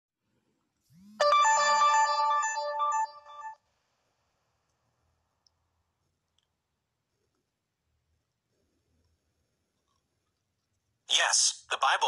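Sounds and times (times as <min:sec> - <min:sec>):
phone ringtone melody: 0:01.0 - 0:03.6.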